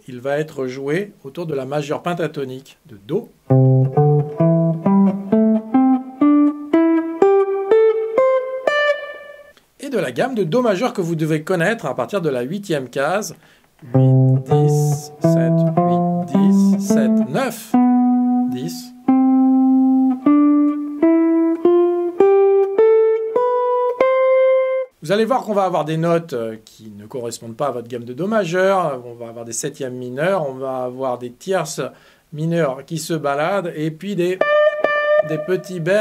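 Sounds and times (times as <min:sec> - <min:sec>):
jazz guitar playing a scale: 0:03.5 - 0:09.6, 0:13.8 - 0:25.0, 0:34.1 - 0:36.0.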